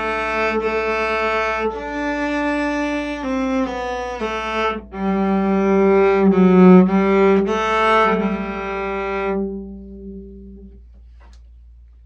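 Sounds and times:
bowed cello: 0.0 - 10.8.

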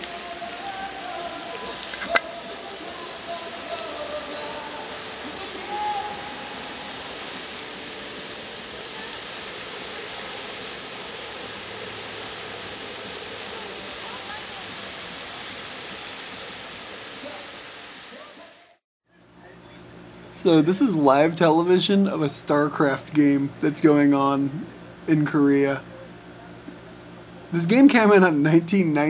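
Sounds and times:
fountain water splashing: 0.0 - 18.7.

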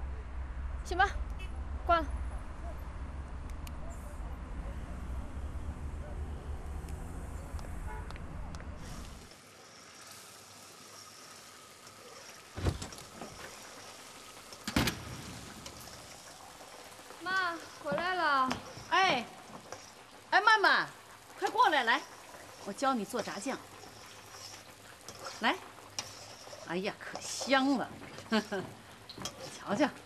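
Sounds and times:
low traffic rumble: 0.0 - 9.3
frying pan sizzle: 8.8 - 30.0.

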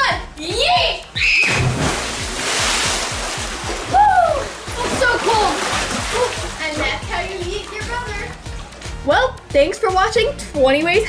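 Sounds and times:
background music: 0.0 - 11.0
pool water splashing: 1.4 - 9.3
people yelling and laughing: 3.9 - 6.6.

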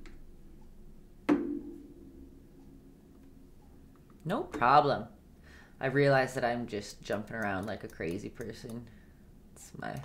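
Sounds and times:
sharp knock of hard object: 1.3 - 1.9.

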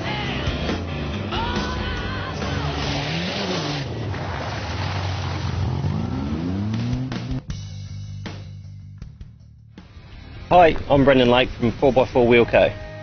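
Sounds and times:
music playing: 0.0 - 3.8, 5.9 - 13.0
engine revving hard: 0.0 - 7.5.

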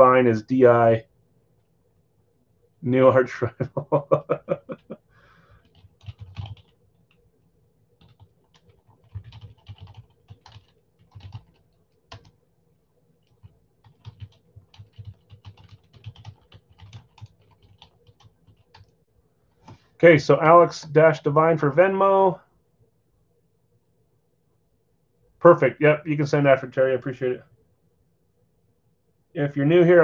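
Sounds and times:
computer keyboard typing: 5.6 - 7.2, 8.0 - 12.4, 13.2 - 19.0.

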